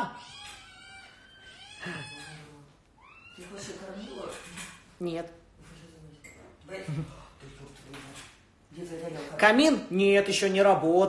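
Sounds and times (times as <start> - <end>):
cat meowing faintly: 0.1 - 4.5.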